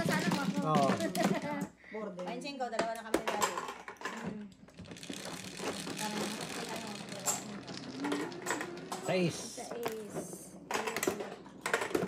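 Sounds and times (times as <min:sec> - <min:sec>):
mahjong tiles clacking: 0:00.0 - 0:01.7, 0:02.8 - 0:12.0.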